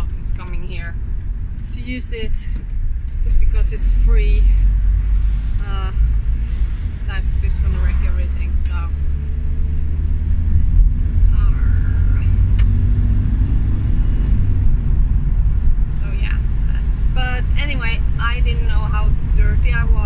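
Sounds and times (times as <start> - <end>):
vehicle engine and road rumble: 0.0 - 20.0.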